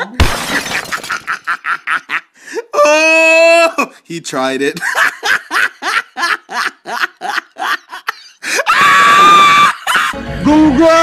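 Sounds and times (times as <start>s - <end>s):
loud held scream: 8.6s - 10.1s.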